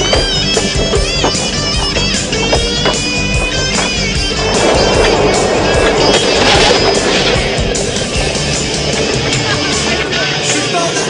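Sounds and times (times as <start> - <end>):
rock song with guitar and vocals: 0.0 - 11.0
skateboard wheels rolling: 0.0 - 11.0.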